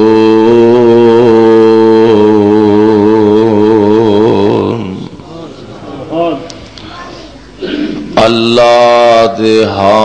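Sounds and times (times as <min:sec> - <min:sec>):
man chanting long sustained note: 0:00.0 - 0:05.0.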